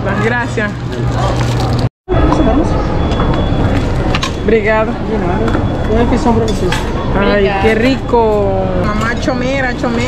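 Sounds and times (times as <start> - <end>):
busy eating area background noise: 0.0 - 10.0.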